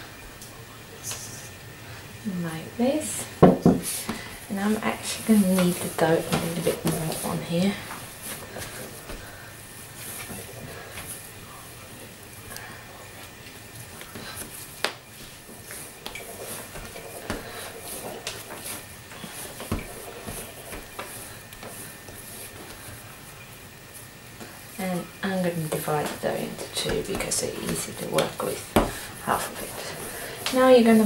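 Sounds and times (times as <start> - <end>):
sharp knock on tabletop: 3.4 - 3.8
hands kneading dough on wood: 3.6 - 11.5, 12.6 - 23.0, 25.4 - 31.0.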